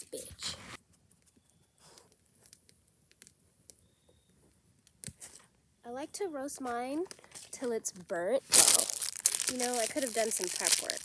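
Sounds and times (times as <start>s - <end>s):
campfire crackling and popping: 8.6s - 11.0s.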